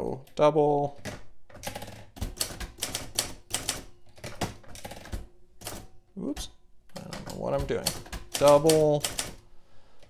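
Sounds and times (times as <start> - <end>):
typewriter key strikes: 7.0 - 9.4.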